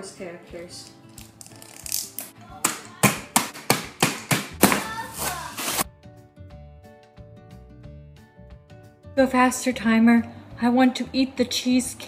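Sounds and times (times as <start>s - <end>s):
hands pounding bag of cookies: 2.6s - 5.8s.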